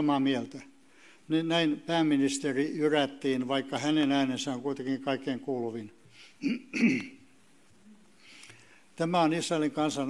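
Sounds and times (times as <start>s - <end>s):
man clearing his throat: 6.4s - 7.2s.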